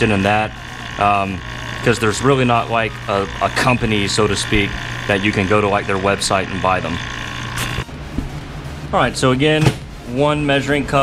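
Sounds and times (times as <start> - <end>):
electric machine hum: 0.0 - 9.4.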